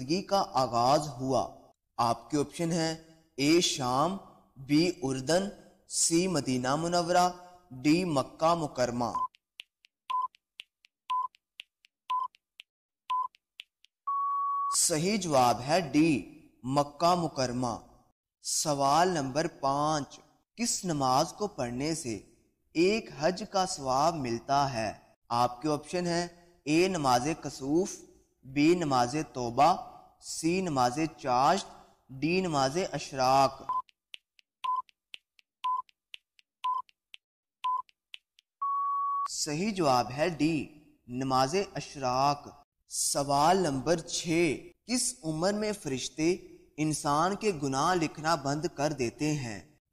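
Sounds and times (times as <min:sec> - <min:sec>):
clock-like ticks: 0:08.8 - 0:13.9
short timer beeps: 0:10.1 - 0:10.4, 0:11.1 - 0:11.4, 0:12.1 - 0:12.4, 0:13.1 - 0:13.4, 0:14.1 - 0:14.8, 0:34.6 - 0:35.0, 0:35.6 - 0:36.0, 0:36.6 - 0:37.0, 0:37.6 - 0:38.0, 0:38.6 - 0:39.3.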